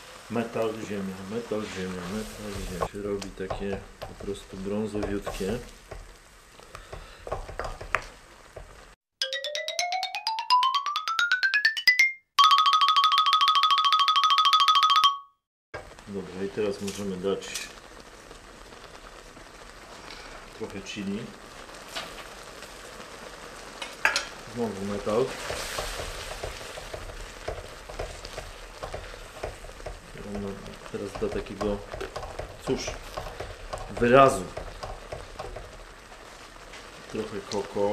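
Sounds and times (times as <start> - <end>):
wooden spoon stirring in sizzling wok: 0.0 - 9.0, 15.8 - 37.9.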